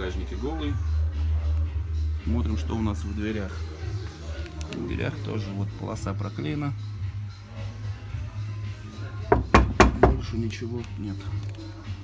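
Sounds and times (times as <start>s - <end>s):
background music: 0.0s - 12.0s
knocks on metal door panel: 9.3s - 10.2s.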